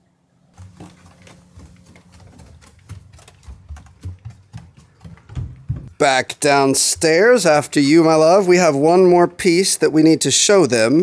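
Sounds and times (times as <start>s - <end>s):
bare footsteps on wooden stairs: 0.5s - 8.3s.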